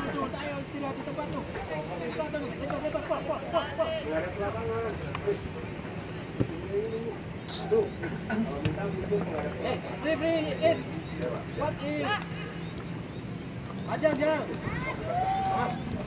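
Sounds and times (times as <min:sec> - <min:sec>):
distant voices calling and talking: 0:00.0 - 0:16.0
faint high whine: 0:00.0 - 0:16.0.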